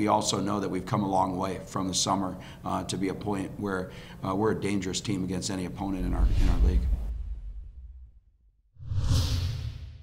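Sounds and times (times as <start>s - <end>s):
whoosh sound effect: 5.9s - 8.2s, 8.8s - 10.0s
deep rumble: 5.9s - 9.9s.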